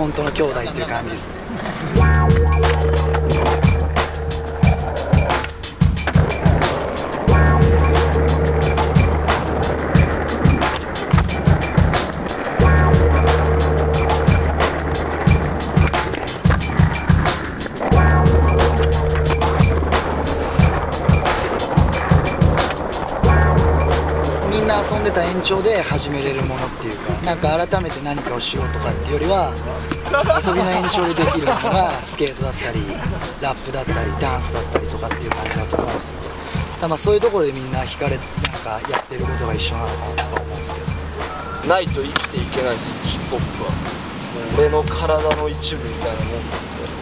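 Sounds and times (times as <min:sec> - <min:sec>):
skateboard wheels rolling on stone: 0:00.0 - 0:47.0
hip-hop beat: 0:02.0 - 0:47.0
skateboard clacking on ground: 0:08.8 - 0:12.6, 0:14.1 - 0:18.0, 0:18.6 - 0:23.2, 0:32.0 - 0:33.7, 0:34.5 - 0:42.8.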